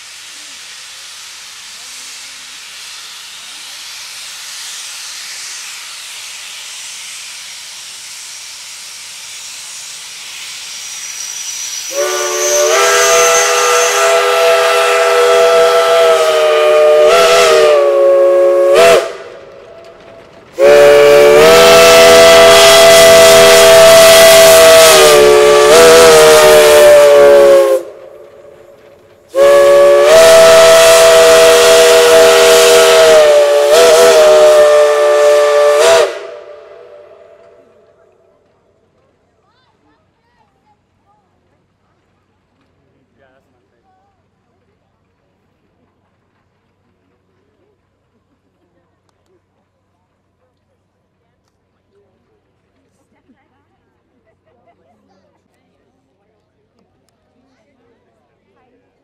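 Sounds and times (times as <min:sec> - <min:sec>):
steam hissing: 0:00.0 - 0:38.2
steam locomotive chime whistle: 0:10.8 - 0:19.4, 0:20.6 - 0:28.1, 0:29.3 - 0:37.9.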